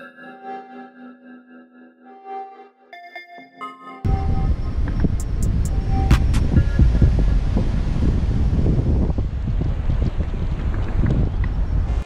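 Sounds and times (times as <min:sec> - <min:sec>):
wind buffeting microphone: 0:04.1 - 0:12.0.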